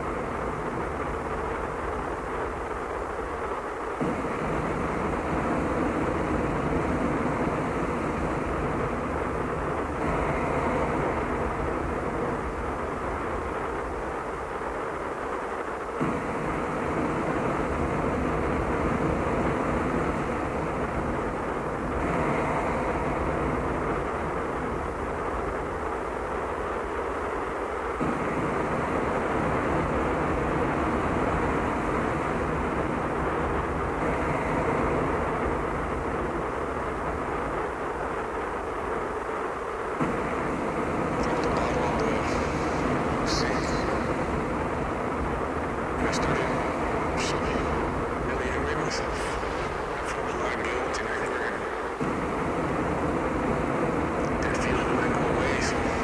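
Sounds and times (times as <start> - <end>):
low droning hum and noise: 0.0 - 56.0.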